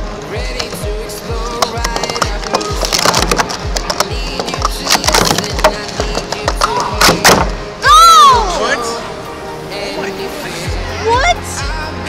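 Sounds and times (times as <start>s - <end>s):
music with thumping beat: 0.0s - 7.7s
plastic cups clattering: 0.4s - 7.6s.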